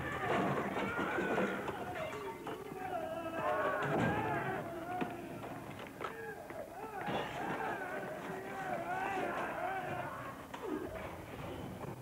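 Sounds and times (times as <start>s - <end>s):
men shouting: 0.1s - 5.6s, 6.3s - 10.4s.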